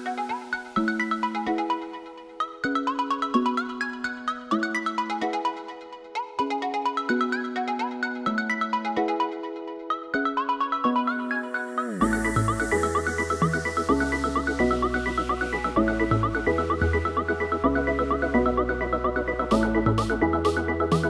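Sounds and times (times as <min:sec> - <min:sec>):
electronic dance music: 0:00.0 - 0:04.0, 0:04.9 - 0:21.0.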